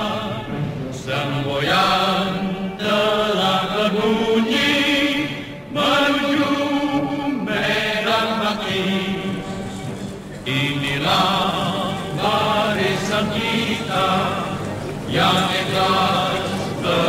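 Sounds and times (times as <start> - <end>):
choir chanting held notes: 0.0 - 17.0.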